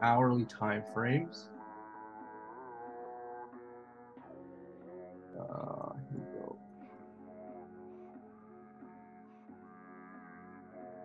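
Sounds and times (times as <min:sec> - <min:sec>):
soft background music: 0:00.0 - 0:11.0
rough croaking sound: 0:05.4 - 0:06.6.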